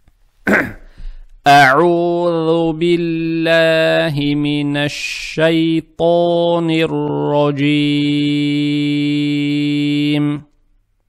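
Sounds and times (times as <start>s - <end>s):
man chanting: 1.4s - 10.5s.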